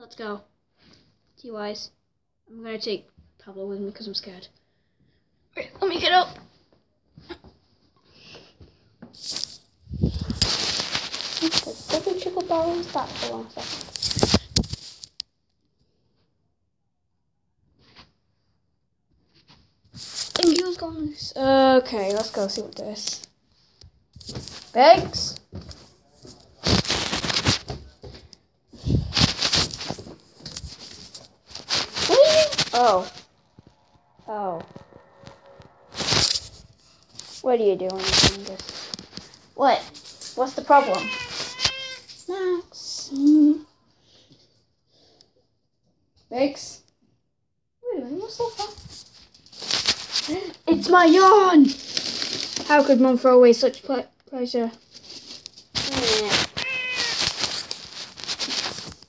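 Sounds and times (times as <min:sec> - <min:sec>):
loud rustle: 0:09.2 - 0:15.0, 0:26.2 - 0:27.8, 0:28.9 - 0:40.1, 0:40.7 - 0:42.0, 0:54.9 - 0:59.0
fabric brushing: 0:10.2 - 0:14.0, 0:26.2 - 0:27.8, 0:28.9 - 0:41.9, 0:55.7 - 0:59.0.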